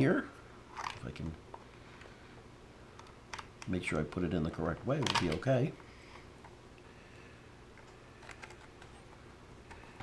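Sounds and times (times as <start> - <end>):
small plastic parts clicking: 7.8 - 9.0.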